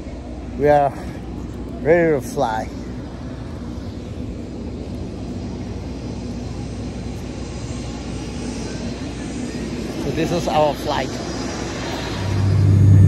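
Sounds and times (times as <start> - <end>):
aircraft engine running: 0.0 - 13.0.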